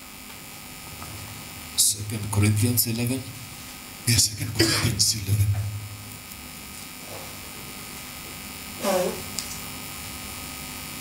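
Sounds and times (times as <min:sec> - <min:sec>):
electrical hum and buzz: 0:00.0 - 0:11.0.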